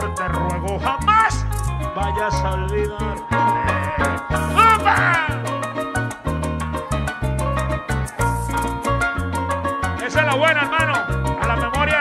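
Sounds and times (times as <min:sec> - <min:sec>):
bass notes: 0:00.0 - 0:12.0
harp: 0:00.0 - 0:12.0
maracas rhythm: 0:00.0 - 0:12.0
person's wavering vocal cry: 0:03.3 - 0:05.7.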